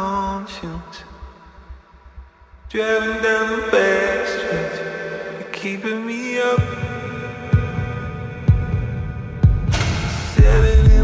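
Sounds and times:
deep kick drum: 8.5s - 11.0s.

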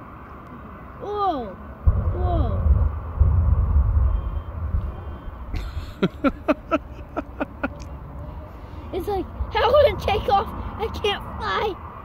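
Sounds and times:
jet engine deep rumble: 1.8s - 7.6s.

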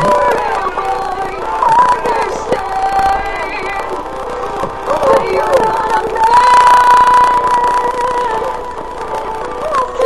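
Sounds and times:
backing track: 0.0s - 10.0s.

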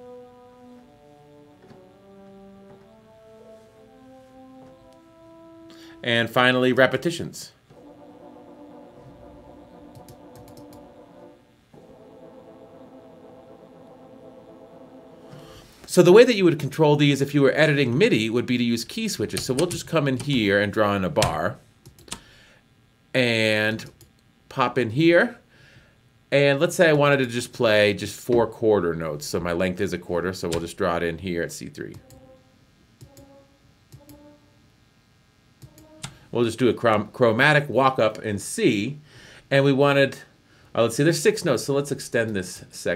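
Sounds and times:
french horns playing held notes: 0.0s - 16.1s.

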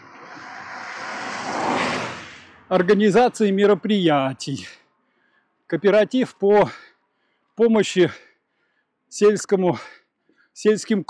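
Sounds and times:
car passing on wet road: 0.0s - 2.7s.

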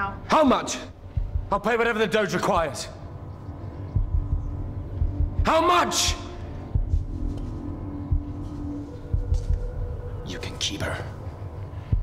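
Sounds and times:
low steady drone: 0.0s - 12.0s
soft low thumps: 1.0s - 1.6s, 2.5s - 10.2s, 11.8s - 12.0s.

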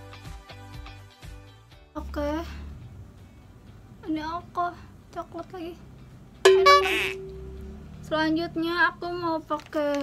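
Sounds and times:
bright struck note: 6.5s - 8.1s.

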